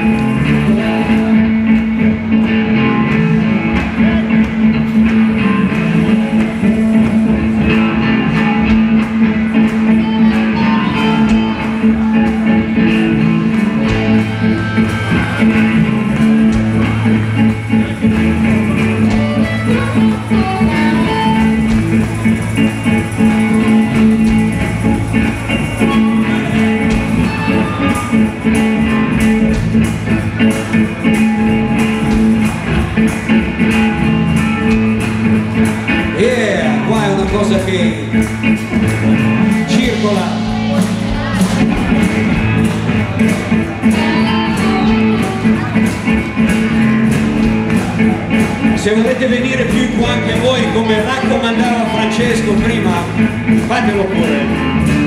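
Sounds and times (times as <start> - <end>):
drum kit: 0.0 - 55.0
electric guitars: 0.0 - 55.0
low stepping bass line: 0.0 - 55.0.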